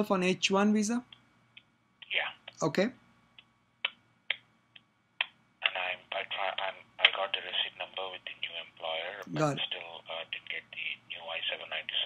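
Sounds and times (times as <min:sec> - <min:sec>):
voice over phone line: 0:05.6 - 0:12.0.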